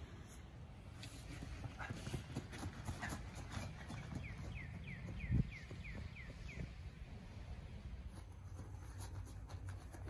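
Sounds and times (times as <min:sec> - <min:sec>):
running footsteps on grass: 0:00.9 - 0:07.4.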